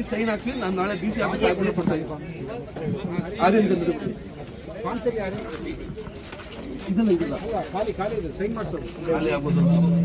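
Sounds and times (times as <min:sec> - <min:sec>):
quieter voices: 0:05.4 - 0:10.0
man speaking: 0:09.0 - 0:10.0.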